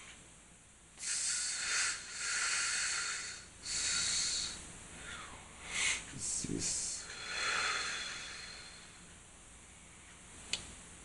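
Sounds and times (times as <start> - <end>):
man breathing into microphone: 1.0 - 9.0.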